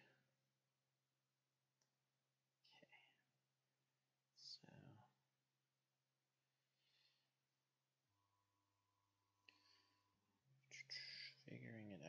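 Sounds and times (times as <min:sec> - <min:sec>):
man whispering: 0:02.6 - 0:03.2, 0:04.4 - 0:05.2, 0:10.7 - 0:12.0.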